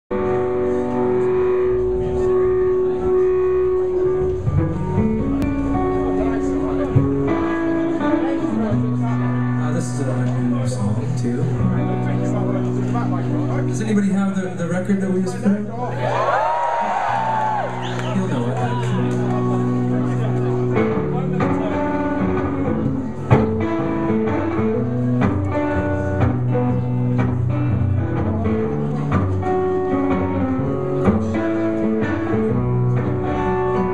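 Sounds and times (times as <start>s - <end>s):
guitar chords ringing: 0.1s - 15.1s, 18.1s - 33.9s
bass notes: 0.1s - 33.9s
live band playing: 0.1s - 33.9s.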